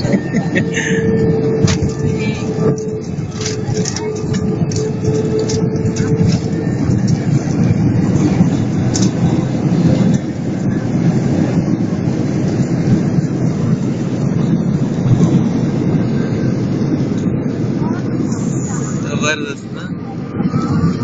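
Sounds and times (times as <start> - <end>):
jet engines and wheels rumbling: 0.0 - 21.0
steady hum: 0.0 - 21.0.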